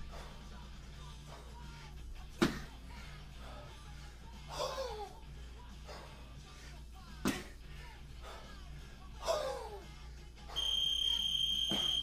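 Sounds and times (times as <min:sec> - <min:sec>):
high-pitched electronic beep: 0:10.6 - 0:12.0.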